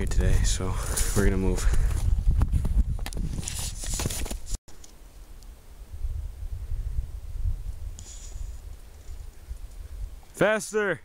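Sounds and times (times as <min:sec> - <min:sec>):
wind rumble on microphone: 0:00.0 - 0:03.8, 0:05.6 - 0:10.3
faint rustles: 0:07.7 - 0:10.1.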